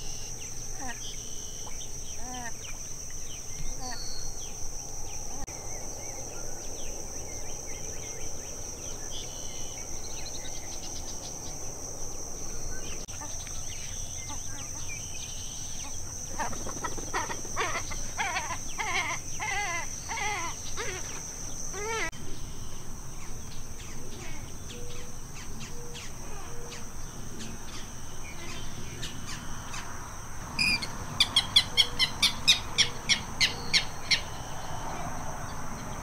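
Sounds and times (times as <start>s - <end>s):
bird calling: 0.0s - 11.7s, 12.4s - 22.2s, 30.6s - 35.2s
high insect drone: 0.0s - 36.0s.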